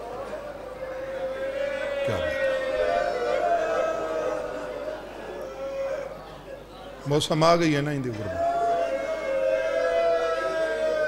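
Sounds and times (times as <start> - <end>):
faint hall noise: 0.0 - 11.0.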